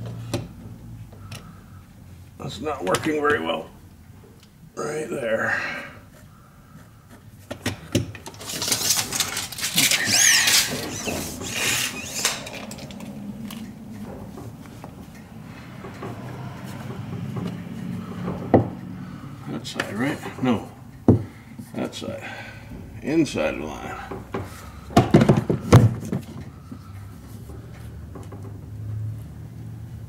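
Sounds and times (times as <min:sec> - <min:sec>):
wood pieces scraping and rustling: 0:08.2 - 0:18.1.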